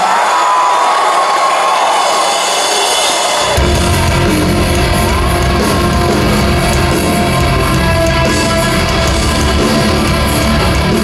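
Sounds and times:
crowd cheering and whooping: 0:00.0 - 0:11.0
rock band playing: 0:01.9 - 0:11.0.

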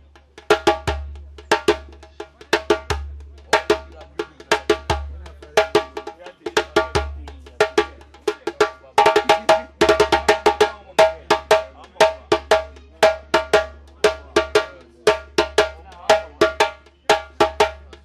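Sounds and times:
djembe hand drumming: 0:00.0 - 0:18.0.

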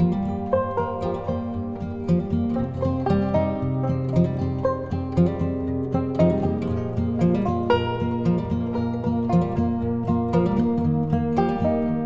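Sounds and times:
plucked string background music: 0:00.0 - 0:12.0.

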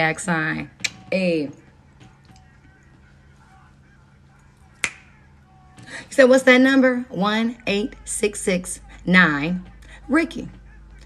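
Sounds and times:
finger snap: 0:00.8 - 0:01.1, 0:04.8 - 0:05.2.

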